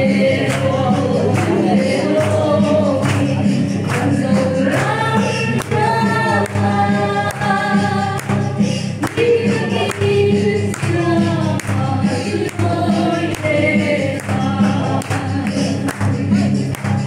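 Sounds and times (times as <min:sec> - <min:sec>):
group of voices singing: 0:00.0 - 0:17.0.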